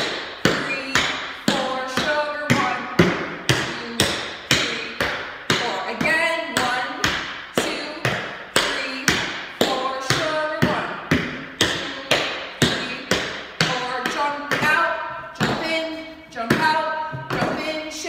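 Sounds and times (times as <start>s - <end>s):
tap shoes on hardwood floor: 0.0s - 15.8s, 16.4s - 17.8s.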